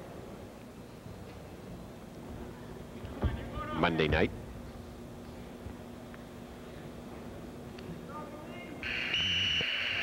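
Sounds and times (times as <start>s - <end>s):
scoreboard buzzer: 8.8s - 10.0s.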